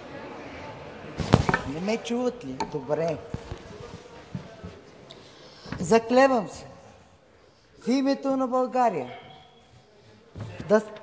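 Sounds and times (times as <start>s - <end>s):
murmur of a large hall: 0.0s - 11.0s
person speaking: 1.2s - 7.0s.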